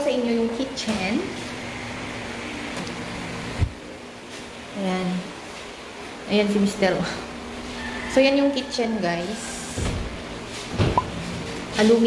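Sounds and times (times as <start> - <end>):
background hum and hiss: 0.0 - 12.0.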